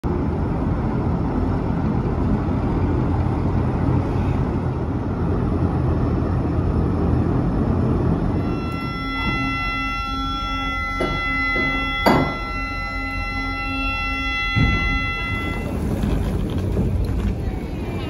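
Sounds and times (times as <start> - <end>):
ferry engines rumbling: 0.0 - 18.0.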